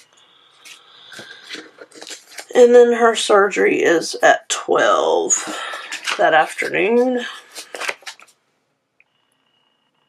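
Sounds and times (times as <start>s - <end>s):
light paper rustling: 0.0s - 3.0s, 5.3s - 8.4s.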